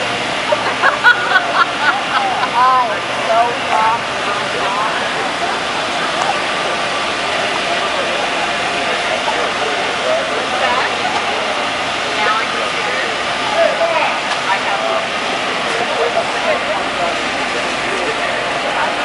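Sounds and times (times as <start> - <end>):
distant voices talking: 0.0 - 19.0
steady rushing noise: 0.0 - 19.0.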